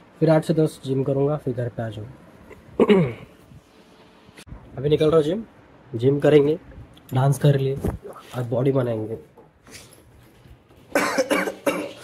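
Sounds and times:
man coughing: 0:02.8 - 0:03.3, 0:10.9 - 0:12.0.

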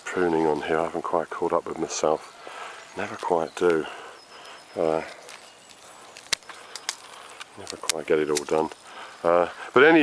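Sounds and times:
secateurs snipping twigs: 0:05.2 - 0:08.8.

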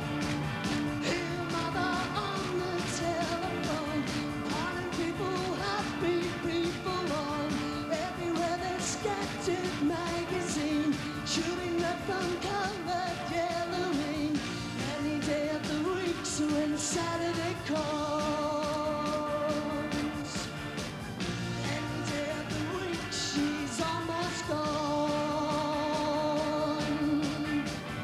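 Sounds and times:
live metal band playing: 0:00.0 - 0:28.0
man singing: 0:01.0 - 0:20.7, 0:21.5 - 0:28.0.

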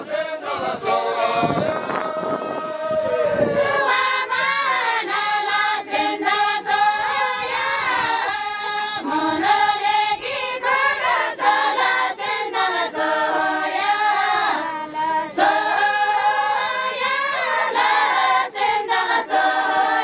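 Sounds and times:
women singing unaccompanied folk song: 0:00.0 - 0:20.0.

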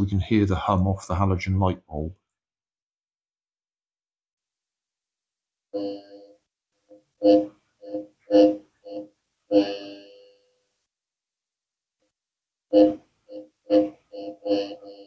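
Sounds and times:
short electronic buzzes: 0:05.8 - 0:10.6, 0:12.7 - 0:15.0.

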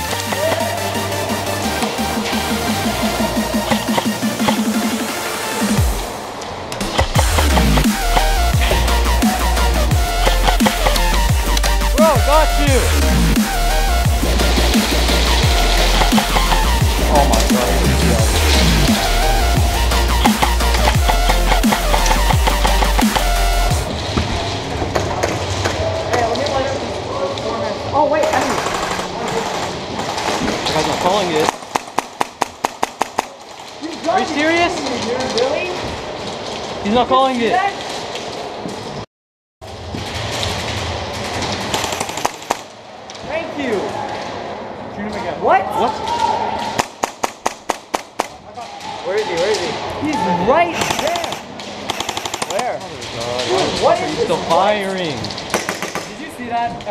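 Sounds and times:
scattered voices: 0:00.0 - 0:06.1, 0:06.9 - 0:23.9, 0:25.6 - 0:31.6, 0:48.4 - 0:56.9
dubstep music with heavy bass: 0:00.0 - 0:06.2, 0:06.8 - 0:23.9
sharp clicks: 0:03.5 - 0:05.0, 0:06.7 - 0:09.4, 0:10.0 - 0:12.7, 0:19.8 - 0:23.7, 0:50.7 - 0:52.8
airsoft pistol shots: 0:50.8 - 0:52.6, 0:55.5 - 0:56.1.

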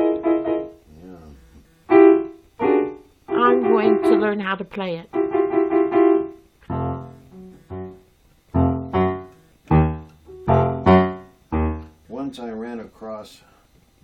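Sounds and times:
electric keyboard piano chords: 0:00.0 - 0:12.6.

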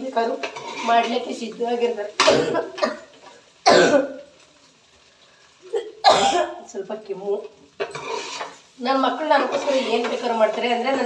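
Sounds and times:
woman coughing: 0:02.2 - 0:03.1, 0:03.7 - 0:04.2, 0:05.7 - 0:06.6.

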